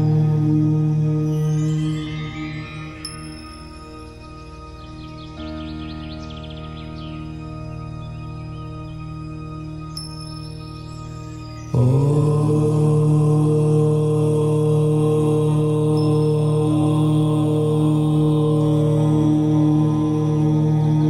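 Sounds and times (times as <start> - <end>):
faint high chime tones: 0.0 - 18.6
person chanting om: 0.0 - 21.0
soft meditation drone: 0.0 - 21.0.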